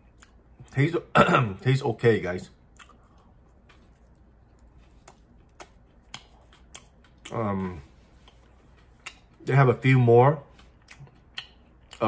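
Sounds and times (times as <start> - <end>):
person chewing with wet mouth clicks: 2.7 - 7.4, 8.2 - 9.4, 10.6 - 12.0.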